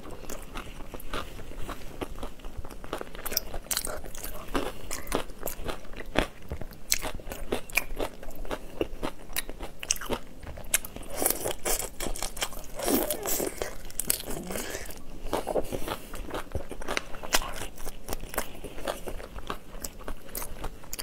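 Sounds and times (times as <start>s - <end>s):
person chewing crunchy shrimp: 0.0s - 21.0s.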